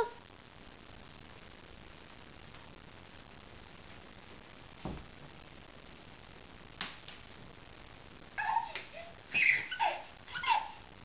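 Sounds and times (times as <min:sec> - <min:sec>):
baby squealing with laughter: 0:08.4 - 0:10.9.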